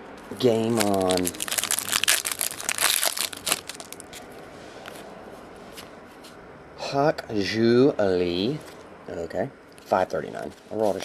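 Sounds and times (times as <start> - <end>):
foil wrapper crinkling: 0.2 - 4.3.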